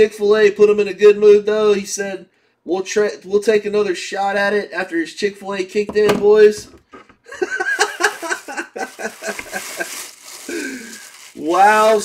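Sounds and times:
man laughing: 0:07.2 - 0:10.9.

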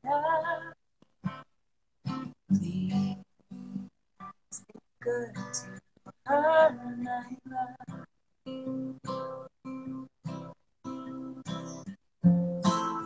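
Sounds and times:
woman singing folk song: 0:00.0 - 0:01.4, 0:02.1 - 0:08.8
acoustic guitar: 0:00.0 - 0:13.0.

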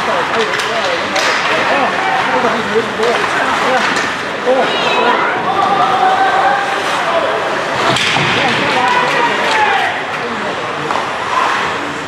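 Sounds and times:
clacks of sticks and puck: 0:00.0 - 0:02.3, 0:03.0 - 0:04.3, 0:07.9 - 0:10.2, 0:10.8 - 0:11.6
ice arena noise: 0:00.0 - 0:12.0.

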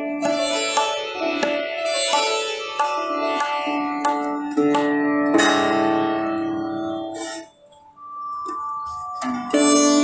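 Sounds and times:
sitar plucked notes: 0:00.0 - 0:10.0.

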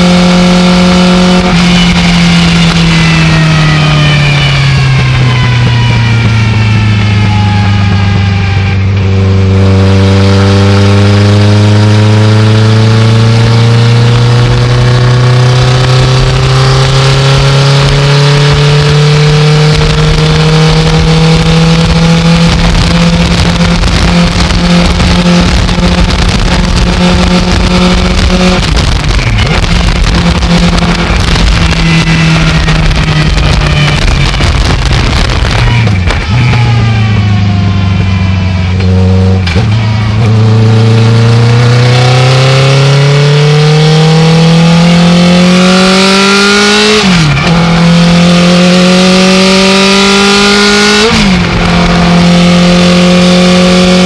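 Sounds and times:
motorcycle engine revving: 0:00.0 - 0:54.0
wind and road noise: 0:00.0 - 0:54.0.

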